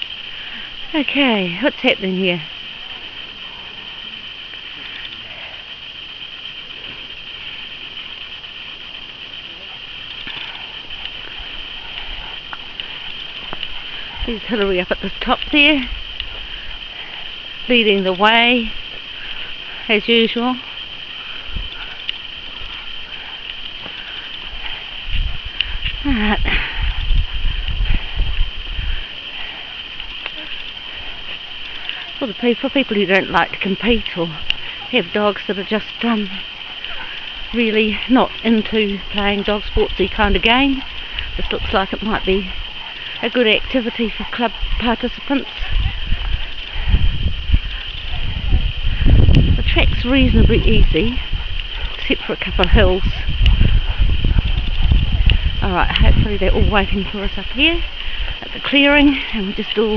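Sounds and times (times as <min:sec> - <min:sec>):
brush rustling: 0:00.0 - 0:59.9
steady high hiss: 0:00.0 - 0:59.9
steady high-pitched drone: 0:00.0 - 0:59.9
soft footsteps on grass: 0:06.3 - 0:26.4
faint clicks: 0:10.0 - 0:17.6, 0:20.8 - 0:26.0.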